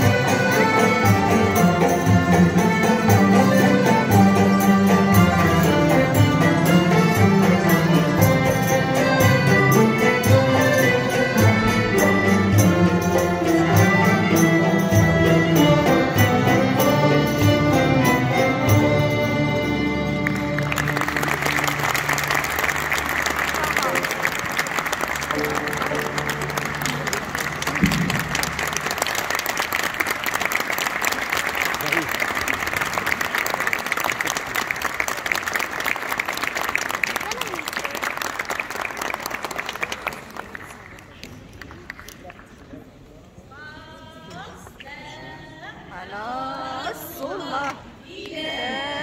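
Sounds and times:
low orchestra notes: 0.0s - 30.4s
audience applauding: 20.2s - 42.6s.

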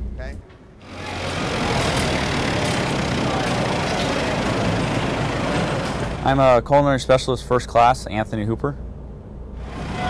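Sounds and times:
forklift engine running: 0.8s - 6.4s
machinery noise: 0.8s - 6.8s, 9.6s - 10.0s.

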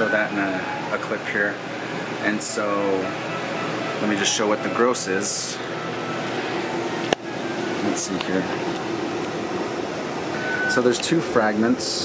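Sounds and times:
ventilation fan hum: 0.0s - 12.0s.

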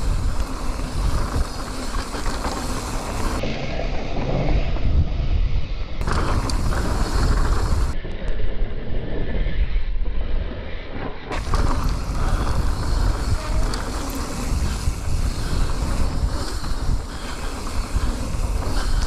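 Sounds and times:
mountain bike rattling: 0.0s - 3.5s, 6.0s - 8.0s, 11.3s - 19.0s
tyres rumbling on dirt trail: 0.0s - 4.6s, 6.0s - 8.0s, 11.3s - 19.0s
wind on microphone: 0.0s - 19.0s.

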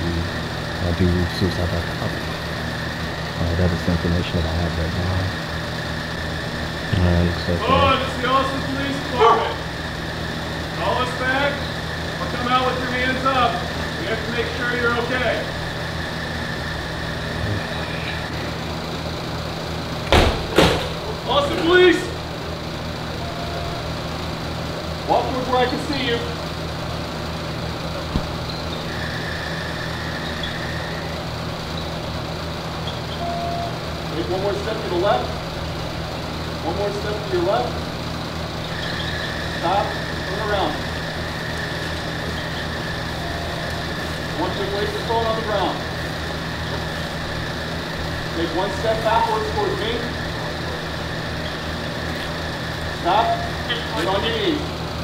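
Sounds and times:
low mechanical hum: 0.0s - 55.0s
vehicle engine idling: 0.0s - 55.0s.

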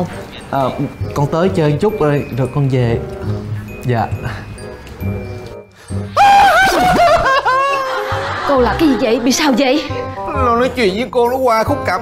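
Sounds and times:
person wailing cry: 6.2s - 8.0s.

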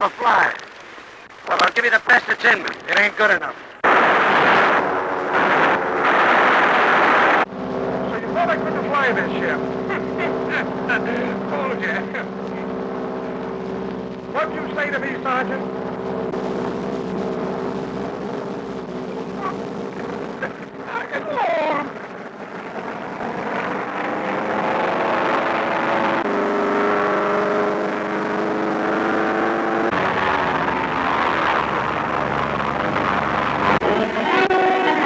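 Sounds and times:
plane engine droning: 3.5s - 35.0s.

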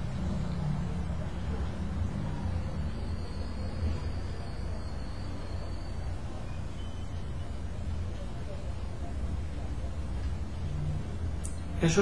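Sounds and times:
faint thin high whine: 0.0s - 12.0s.

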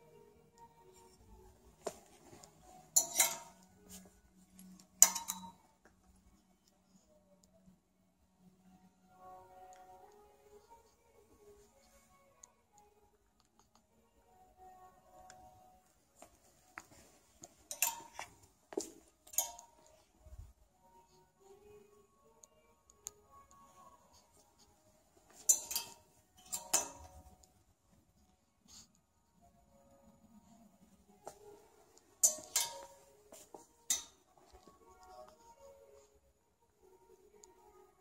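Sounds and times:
faint background music: 0.0s - 38.0s
metal hangers clinking on rail: 1.9s - 4.0s, 4.6s - 5.6s, 16.9s - 19.9s, 25.3s - 27.3s, 31.3s - 34.4s.

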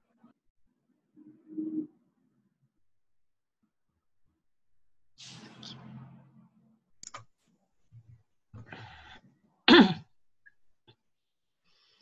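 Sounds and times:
person coughing: 9.7s - 10.1s.

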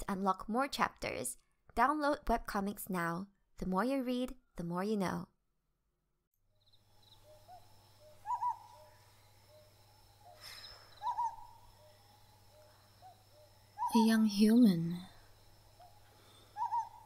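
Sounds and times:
steady low hum: 6.7s - 17.0s
owl hooting: 7.0s - 17.0s.

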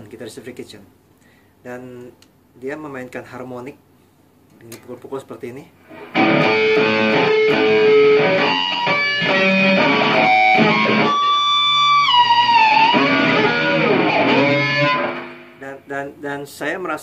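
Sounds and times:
high guitar note sliding down: 5.9s - 15.6s
distorted electric guitar: 5.9s - 15.8s.

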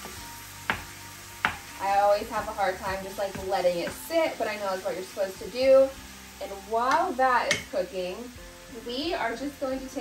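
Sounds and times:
meat sizzling: 0.0s - 10.0s
spatula knocking on metal skillet: 0.6s - 1.8s, 6.9s - 7.7s.

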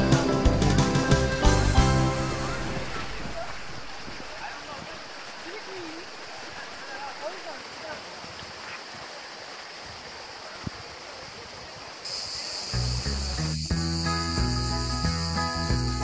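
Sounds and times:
background music with a beat: 0.0s - 2.8s, 12.8s - 16.0s
stream rushing over rocks: 0.0s - 13.5s
high insect drone: 12.0s - 16.0s.

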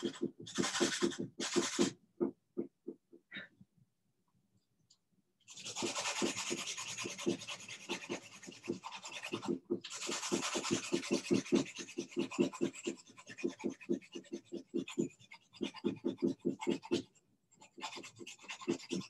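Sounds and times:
pencil sharpening strokes: 0.0s - 1.9s, 5.5s - 19.0s.

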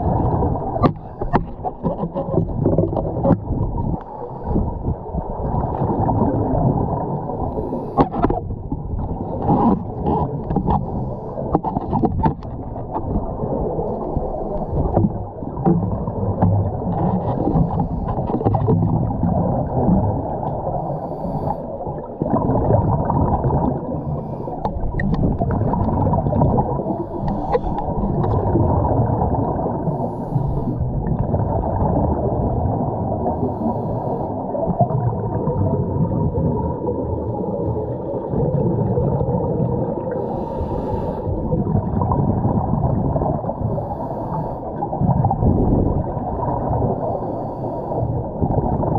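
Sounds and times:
diver's bubbles: 0.0s - 20.8s, 21.8s - 40.6s, 41.3s - 44.0s, 44.8s - 47.2s, 48.1s - 48.9s
underwater rumbling and gurgling: 0.0s - 48.9s.

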